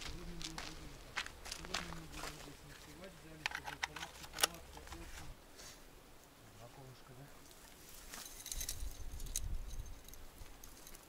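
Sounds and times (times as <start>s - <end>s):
footsteps on gravel: 0.0s - 4.1s.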